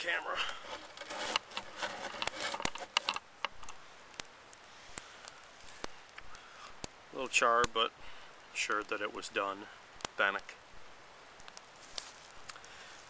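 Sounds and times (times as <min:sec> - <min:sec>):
rustling and handling noise: 0:00.0 - 0:03.8, 0:11.6 - 0:13.0
campfire crackling and popping: 0:00.0 - 0:13.0.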